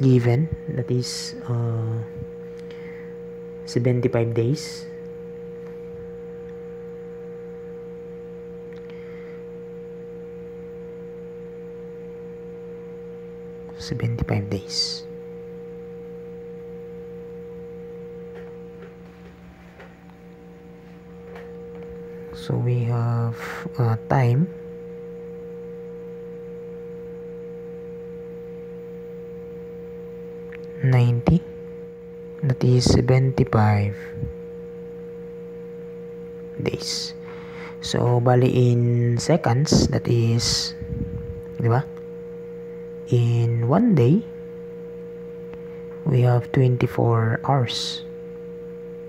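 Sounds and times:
steady pitched hum: 0.0s - 49.0s.

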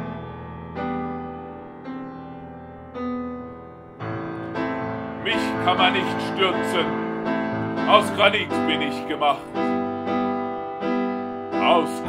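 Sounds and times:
piano playing slow chords: 0.0s - 12.0s.

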